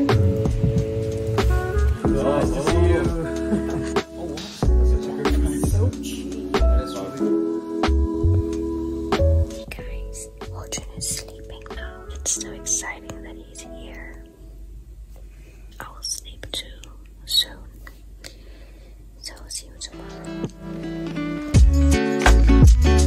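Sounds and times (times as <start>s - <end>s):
soft background music: 0.0s - 15.1s, 19.2s - 23.0s
woman whispering: 9.5s - 14.3s, 15.7s - 18.1s, 19.2s - 20.2s.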